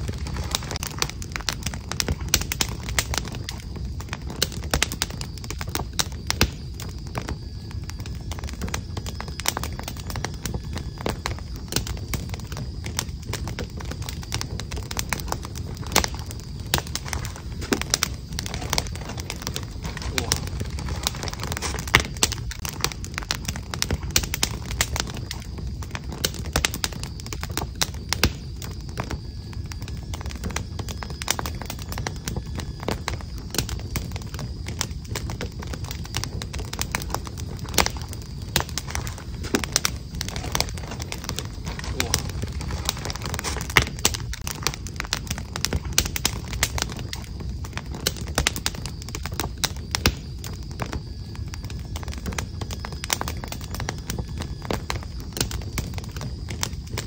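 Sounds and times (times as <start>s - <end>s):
wood fire crackling: 0.0s - 57.0s.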